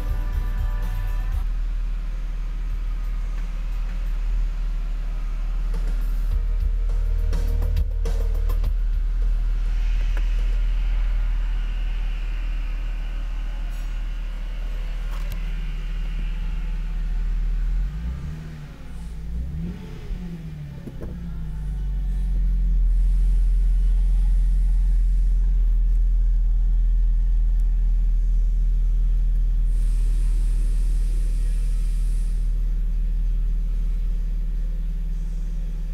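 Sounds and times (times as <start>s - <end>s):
car engine idling: 0.0s - 35.9s.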